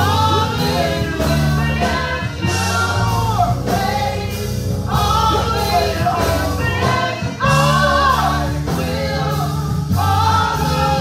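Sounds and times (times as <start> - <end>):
backing singers: 0.0 - 11.0
instrumental accompaniment with bass: 0.0 - 11.0
woman singing gospel: 0.0 - 11.0.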